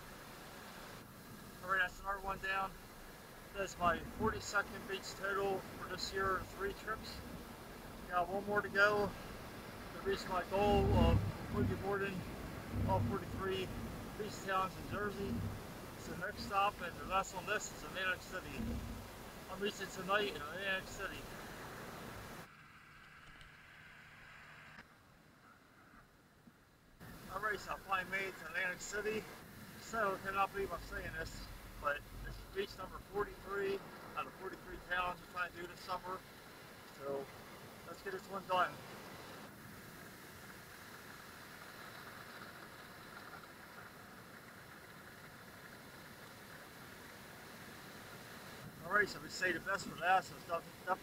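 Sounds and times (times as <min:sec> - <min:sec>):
ocean surf on a beach: 0:00.0 - 0:22.5, 0:27.0 - 0:51.0
faint background hiss: 0:00.0 - 0:51.0.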